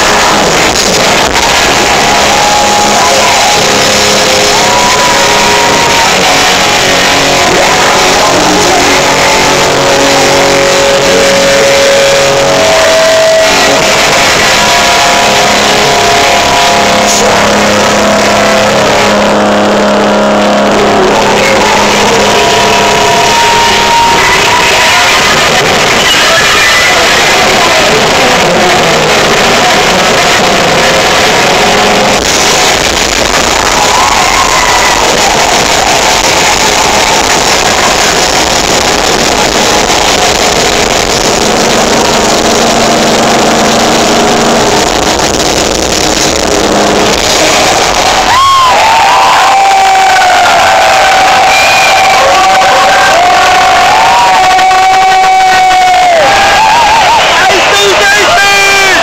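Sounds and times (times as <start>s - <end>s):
crowd cheering: 0.0s - 59.0s
live hard rock band: 0.0s - 59.0s.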